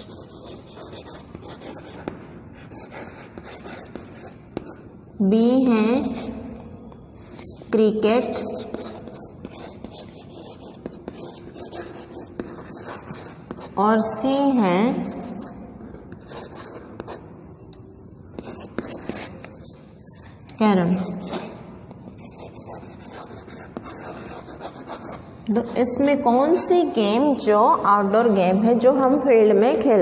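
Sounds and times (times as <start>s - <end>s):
chalk scratching on blackboard: 0.0s - 4.9s, 8.2s - 17.2s, 18.3s - 20.3s, 22.2s - 26.7s
woman's voice: 5.2s - 6.4s, 7.7s - 8.7s, 13.8s - 15.4s, 20.6s - 21.4s, 25.5s - 30.0s
chalk tapping on board: 8.2s - 13.8s.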